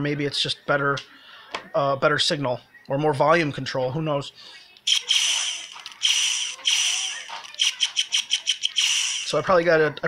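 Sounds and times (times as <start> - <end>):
blaster sound effects from small speaker: 4.9 - 9.5.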